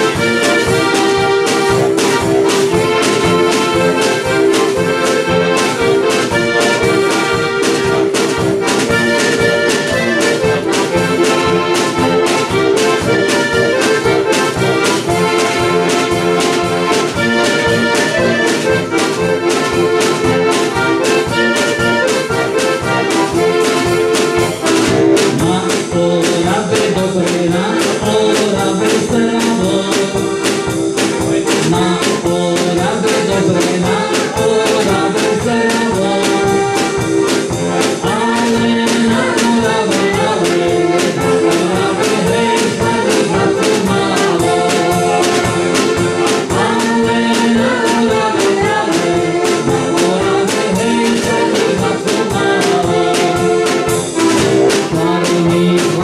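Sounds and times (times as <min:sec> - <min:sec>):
accordions playing a tune: 0:00.0 - 0:56.0
drum kit beat: 0:00.0 - 0:56.0.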